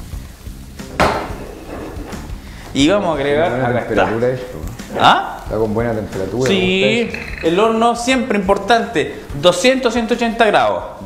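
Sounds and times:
pan tossed clatter and hiss: 0:00.8 - 0:02.8.

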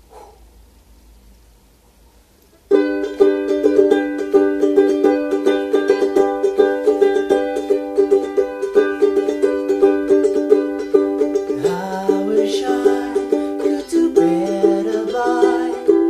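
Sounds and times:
ukulele strumming chords: 0:02.6 - 0:16.0.

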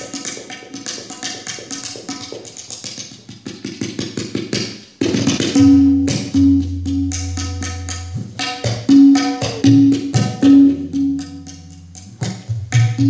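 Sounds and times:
tabla drums playing: 0:00.0 - 0:13.0
steady low drone note: 0:05.6 - 0:08.2, 0:10.4 - 0:12.6.

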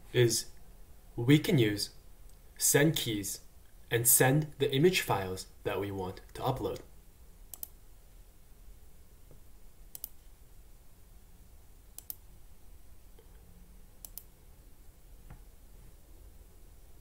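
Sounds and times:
low room hum: 0:00.0 - 0:17.0
computer mouse clicks: 0:07.5 - 0:07.8, 0:09.9 - 0:10.3, 0:12.0 - 0:12.2, 0:14.0 - 0:14.3.

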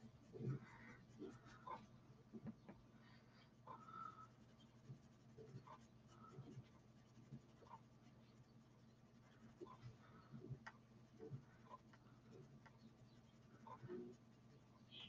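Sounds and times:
sponge rubbing on paper: 0:00.0 - 0:01.9, 0:03.8 - 0:15.0.

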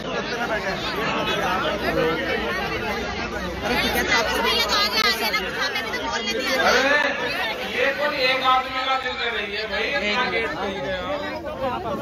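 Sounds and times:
men talking in a crowd: 0:00.0 - 0:12.0.

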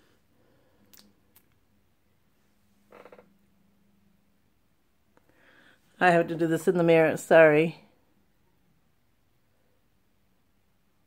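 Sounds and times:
faint steady hum: 0:00.0 - 0:11.0
soft croaky sound: 0:02.9 - 0:03.5.

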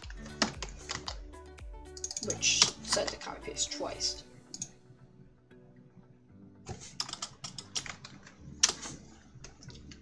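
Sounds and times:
computer keyboard typing: 0:00.0 - 0:01.3, 0:07.0 - 0:08.8.

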